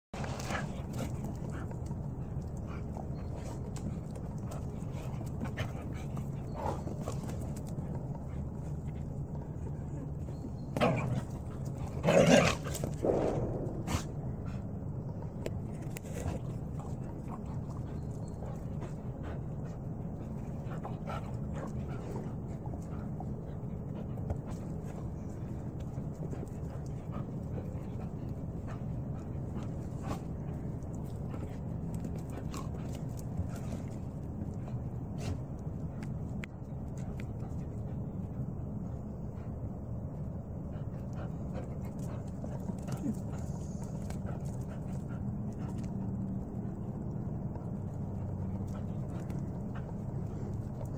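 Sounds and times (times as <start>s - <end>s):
low background hum: 0.2s - 50.9s.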